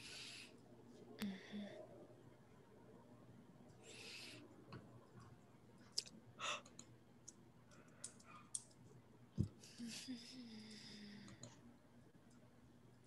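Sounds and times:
faint clicks: 5.9 - 8.8, 10.6 - 11.6.

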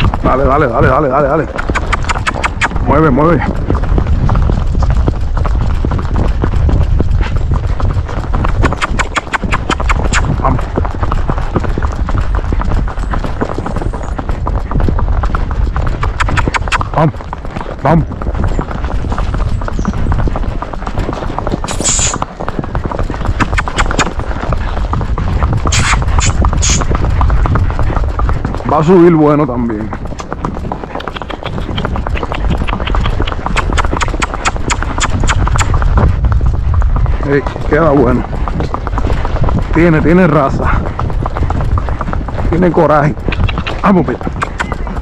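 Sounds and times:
hoofbeats on asphalt: 0.0 - 45.0
low rumble: 34.8 - 42.2.

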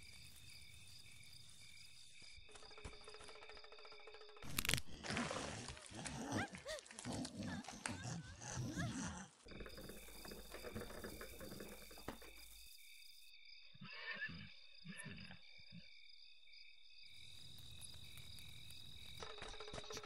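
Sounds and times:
crickets chirping: 0.0 - 20.0
creatures growling and snarling: 4.7 - 10.4.

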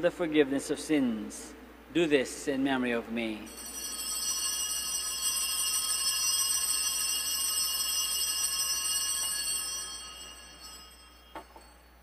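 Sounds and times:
altar bell ringing: 3.4 - 12.0.

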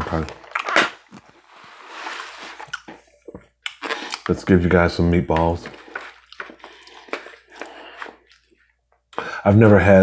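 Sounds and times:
soft wet squishing: 0.5 - 9.3.

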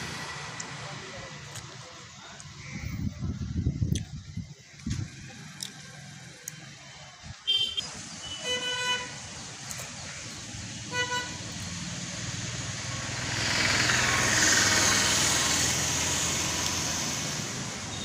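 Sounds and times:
vehicle horn toots: 7.5 - 9.1, 10.9 - 11.4
vehicle passing: 10.4 - 17.9.

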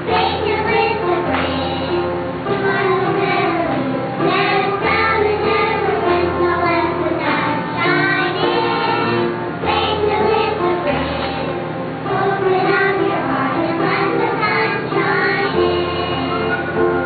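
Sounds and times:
children singing a church song: 0.0 - 16.8.

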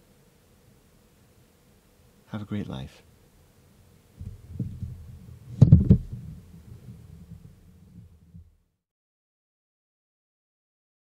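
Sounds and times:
loud thumps: 4.2 - 8.5
low rumbling and bumping on microphone: 4.2 - 8.6.

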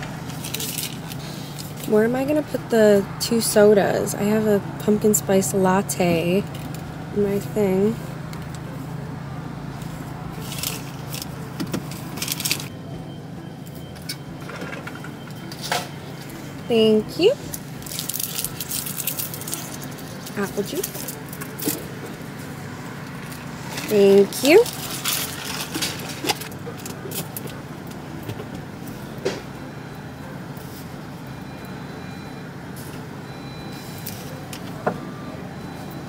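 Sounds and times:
paper bags and cups rustling: 0.0 - 1.9, 10.4 - 12.7, 17.2 - 22.2, 23.1 - 27.6
car idling: 0.0 - 36.0.

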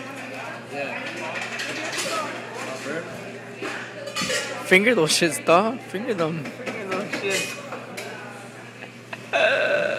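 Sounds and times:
indistinct chatter: 0.0 - 9.9.

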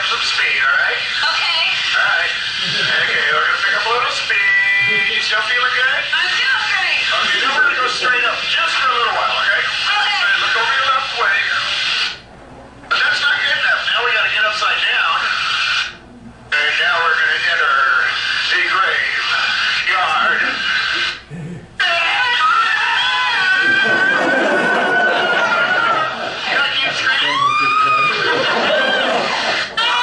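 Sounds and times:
voice over music from speakers: 16.5 - 22.6.

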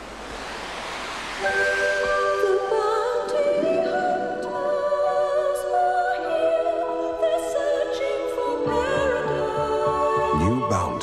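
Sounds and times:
surf rushing: 0.0 - 4.6
music with long held notes: 0.1 - 11.0.

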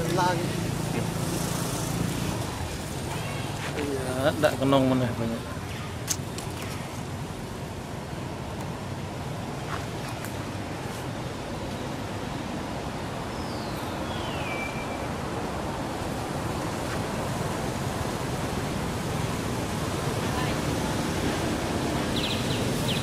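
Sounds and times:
rushing background noise: 0.0 - 23.0
thin whistled call: 13.3 - 15.2.

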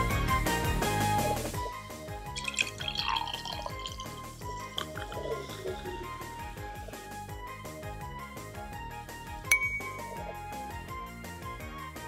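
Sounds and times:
quiet background music: 1.2 - 12.0
beer pouring and fizzing: 1.6 - 7.0.

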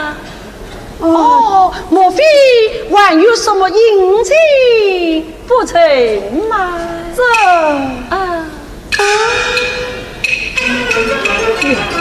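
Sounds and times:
strings and clicking percussion: 8.9 - 12.0.

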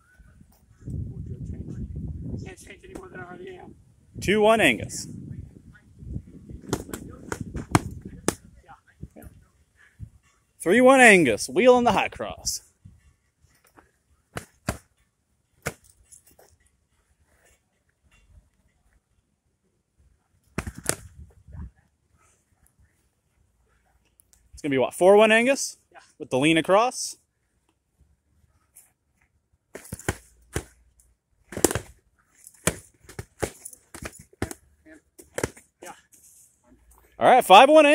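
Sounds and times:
foam swords slapping shields: 6.7 - 8.5, 31.5 - 32.0, 32.6 - 34.6, 35.2 - 35.6.

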